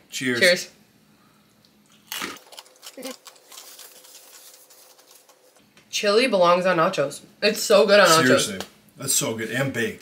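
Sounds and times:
crunchy chip bite: 1.9s - 5.3s
crisp chewing: 1.9s - 5.6s.

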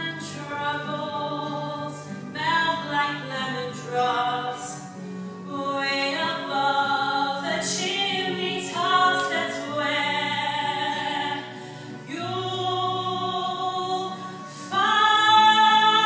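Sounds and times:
woman singing: 0.0s - 16.0s
choir voices: 5.6s - 16.0s.

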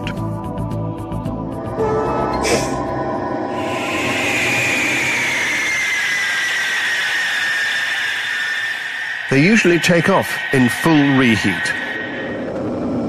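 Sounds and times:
jet engines whining: 1.4s - 13.0s.

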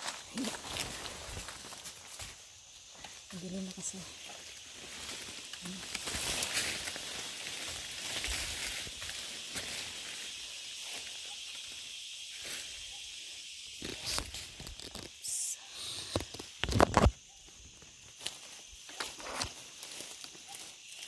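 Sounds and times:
footsteps crunching through dry leaves: 0.0s - 11.3s, 17.8s - 21.0s
twigs snapping: 13.8s - 15.2s.

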